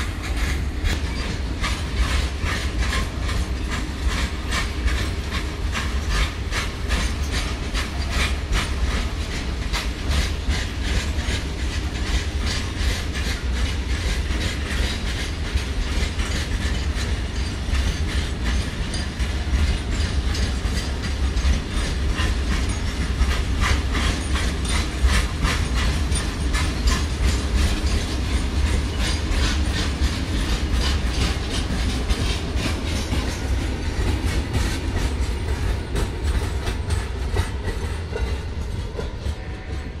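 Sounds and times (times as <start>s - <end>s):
freight train wheels clattering: 0.0s - 40.0s.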